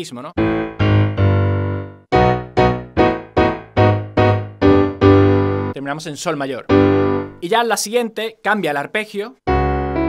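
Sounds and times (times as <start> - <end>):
digital piano arpeggio: 0.4 - 5.8, 6.5 - 7.6, 9.5 - 10.0.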